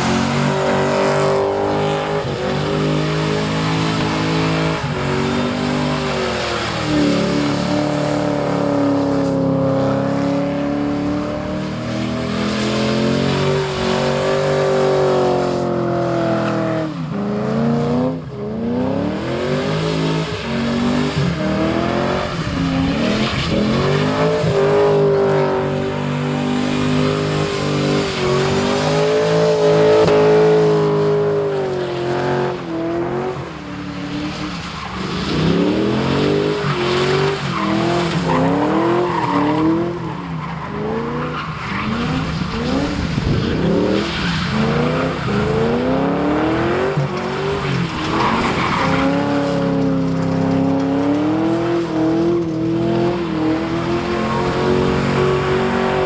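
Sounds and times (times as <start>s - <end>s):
car engine revving high: 0.0s - 56.0s.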